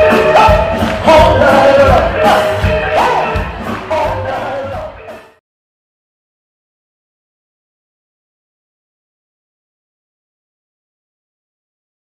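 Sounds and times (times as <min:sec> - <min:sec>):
crowd shouting and cheering: 0:00.0 - 0:05.4
live band music: 0:00.0 - 0:05.4.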